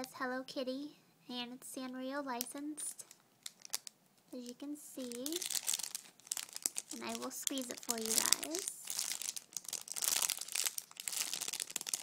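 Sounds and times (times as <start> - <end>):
plastic packaging crinkling: 2.8 - 12.0.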